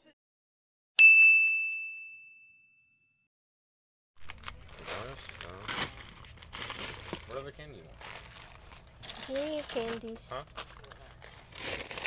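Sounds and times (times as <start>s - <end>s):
bright bell-like ding: 1.0s - 3.2s.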